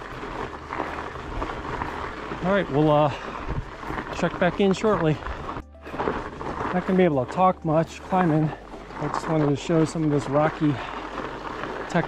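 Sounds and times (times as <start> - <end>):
bike tyres crunching over gravel: 0.0 - 12.0.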